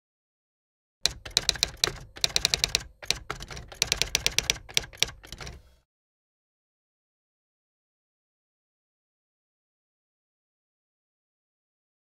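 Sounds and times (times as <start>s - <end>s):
typewriter key clatter: 1.1s - 5.8s.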